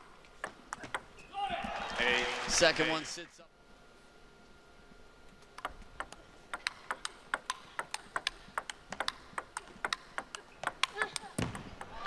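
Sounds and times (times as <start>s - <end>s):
table tennis ball clicking: 5.4s - 12.0s.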